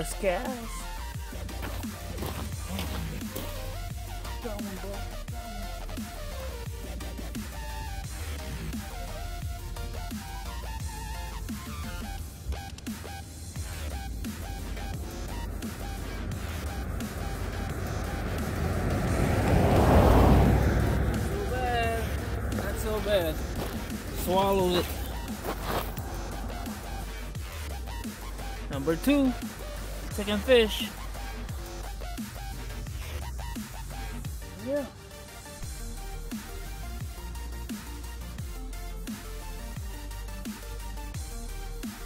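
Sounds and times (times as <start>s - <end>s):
background music with bass beat: 0.0s - 42.0s
loud whooshing swell: 10.8s - 33.2s.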